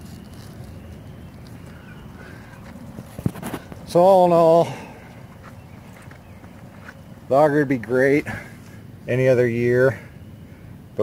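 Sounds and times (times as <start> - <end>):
footsteps on dirt path: 0.0 - 7.3
outdoor background noise: 0.0 - 11.0.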